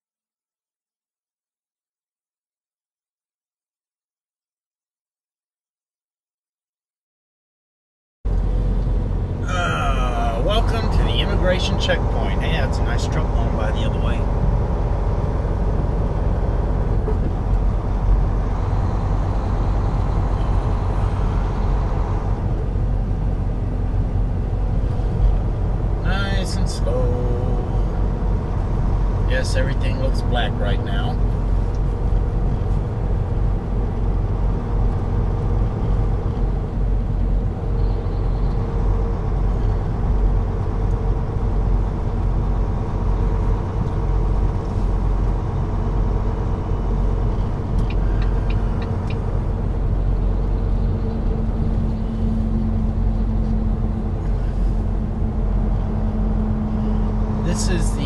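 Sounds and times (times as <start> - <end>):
diesel truck engine drone: 8.3 - 58.0
road noise: 8.3 - 58.0
short voice-like sounds: 9.4 - 10.8.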